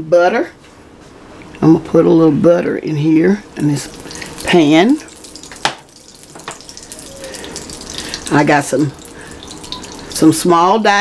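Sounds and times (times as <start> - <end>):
butter sizzling in a skillet: 3.1 - 10.7.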